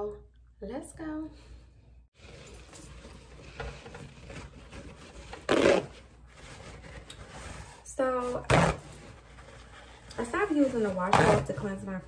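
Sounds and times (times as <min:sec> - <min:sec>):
paper towel ripping: 0:04.2 - 0:09.2, 0:10.4 - 0:11.7.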